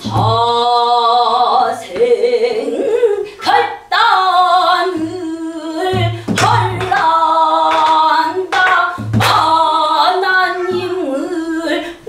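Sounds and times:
woman singing in strained voice: 0.0 - 12.0
barrel drum thumps and strikes: 5.8 - 7.2.

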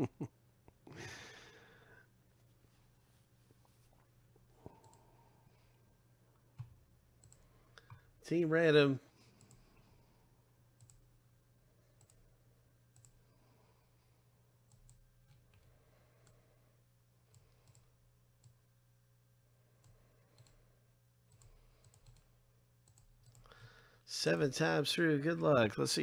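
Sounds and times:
low steady hum: 0.0 - 26.0
computer mouse clicks: 4.7 - 5.0, 6.6 - 8.1, 9.4 - 9.7, 10.8 - 11.0, 12.0 - 12.2, 12.9 - 13.2, 14.7 - 16.4, 17.3 - 18.6, 19.8 - 20.6, 21.3 - 23.6.

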